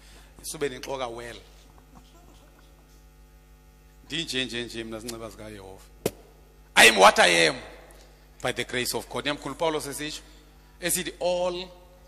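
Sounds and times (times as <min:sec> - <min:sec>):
low electrical mains hum: 0:00.0 - 0:12.0.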